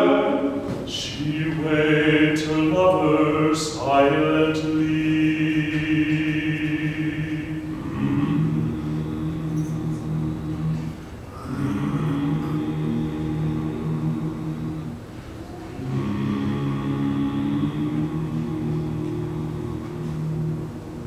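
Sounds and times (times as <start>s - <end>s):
a cappella ensemble singing: 0.0s - 21.0s.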